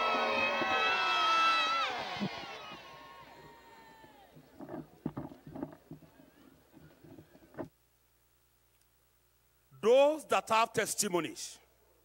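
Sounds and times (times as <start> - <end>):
crowd murmur: 0.0 - 7.5.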